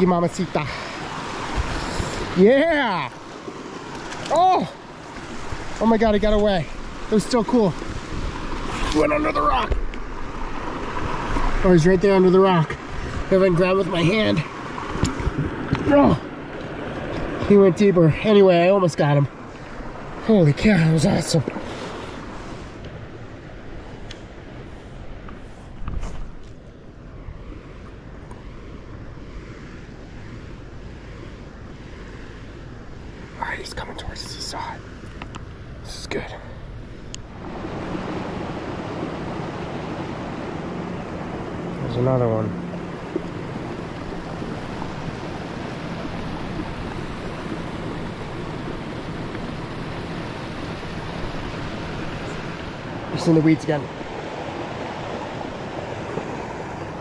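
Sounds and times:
river water flowing: 0.0 - 57.0
wind buffeting microphone: 5.1 - 17.6, 36.6 - 57.0.

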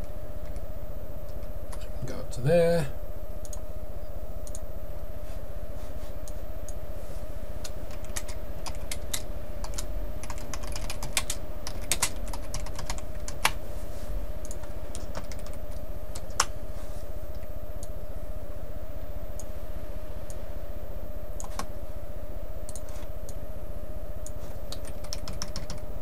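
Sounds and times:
steady low hum: 0.0 - 26.0
typing on computer keyboard: 7.9 - 13.5, 14.5 - 15.6, 24.7 - 25.8.

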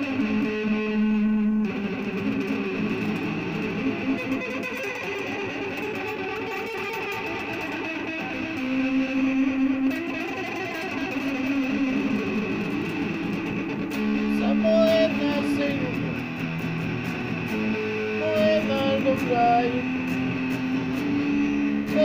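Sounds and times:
electric guitar chords strummed: 0.0 - 22.0
guitar sliding notes: 0.0 - 22.0.

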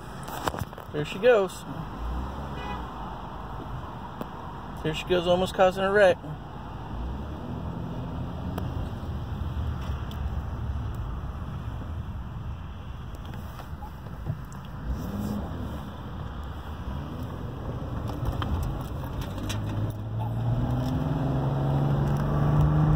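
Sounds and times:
car engine: 0.0 - 22.9
road noise inside car: 0.0 - 22.9.

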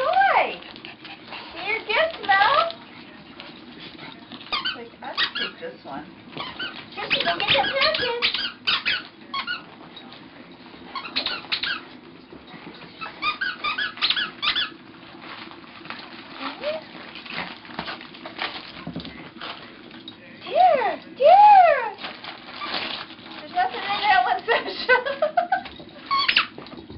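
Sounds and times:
squeaky dog toy squeaking: 4.5 - 5.6, 6.4 - 9.6, 10.9 - 11.8, 13.2 - 14.8, 26.1 - 26.6.

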